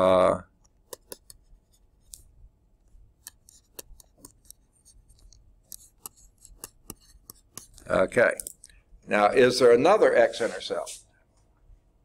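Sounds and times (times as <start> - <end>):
stylus tapping on tablet screen: 0.6 - 2.3, 3.2 - 7.9.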